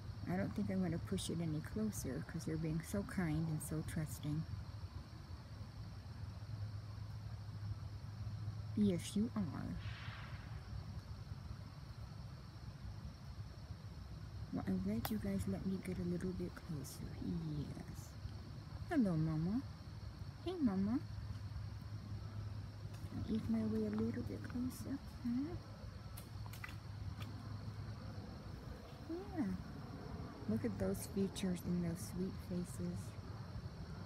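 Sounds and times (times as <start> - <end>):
faint hiss: 0.0 - 34.0
low steady hum: 0.0 - 34.0
breathy hiss: 9.7 - 11.2.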